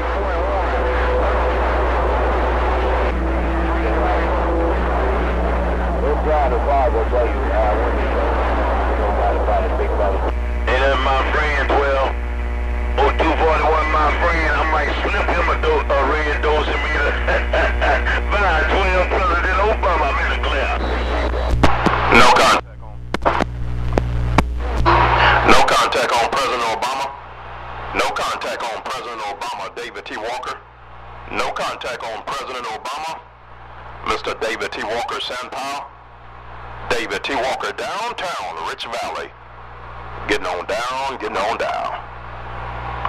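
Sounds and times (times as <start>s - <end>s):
garbled radio transmissions: 0.0s - 43.0s
loud steady radio hum: 0.0s - 43.0s.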